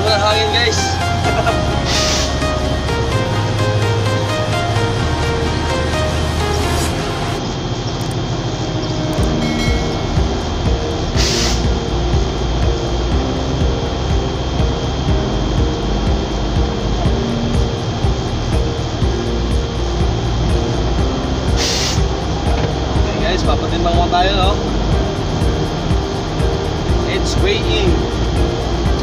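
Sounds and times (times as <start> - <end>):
background music: 0.0 - 29.0
truck engine and road noise: 0.0 - 29.0
short hisses: 1.8 - 2.5, 11.2 - 11.7, 21.6 - 22.0.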